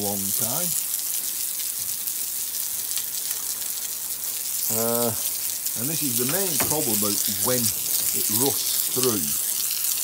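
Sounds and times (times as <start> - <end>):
water jet spraying on concrete: 0.0 - 10.0.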